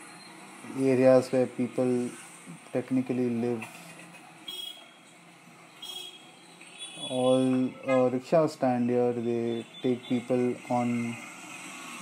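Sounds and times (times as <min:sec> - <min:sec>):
faint street background noise: 0:00.0 - 0:12.0.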